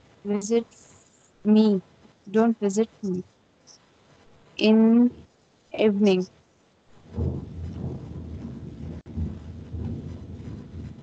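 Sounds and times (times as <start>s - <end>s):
low rumbling microphone noise: 4.0s - 6.3s, 6.9s - 11.0s.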